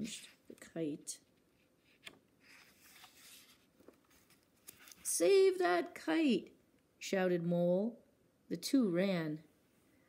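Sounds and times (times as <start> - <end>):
paper page turning: 1.9 - 5.2.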